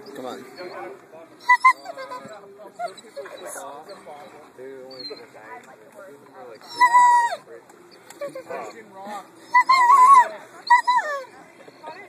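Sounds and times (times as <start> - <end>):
dog whimpering and whining: 0.0 - 4.1, 4.9 - 5.3, 6.6 - 7.4, 8.1 - 8.8, 9.5 - 12.0.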